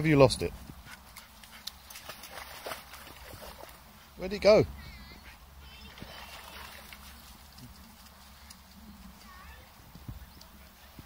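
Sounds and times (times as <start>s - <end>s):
dog splashing in water: 1.0s - 3.8s, 5.9s - 8.7s.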